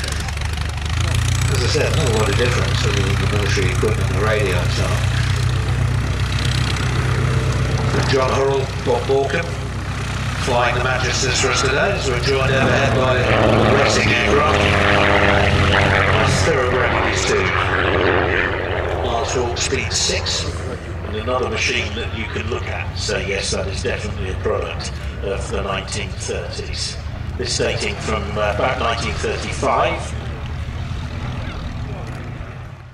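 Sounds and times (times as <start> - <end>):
propeller aircraft engine running: 0.0 - 32.9.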